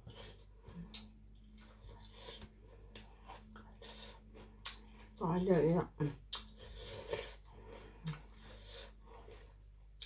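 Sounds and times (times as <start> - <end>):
wet chewing: 0.1 - 5.2, 6.2 - 10.0.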